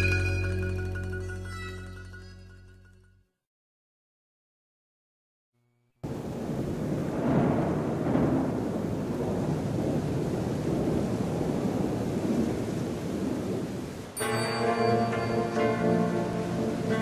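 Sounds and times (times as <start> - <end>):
thunder rumbling: 6.0 - 14.2
rain rushing: 6.0 - 17.0.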